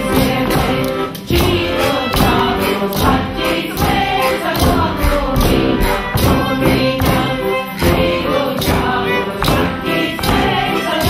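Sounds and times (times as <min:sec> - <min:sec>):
group singing a folk song: 0:00.0 - 0:11.0
fiddle playing: 0:00.9 - 0:11.0.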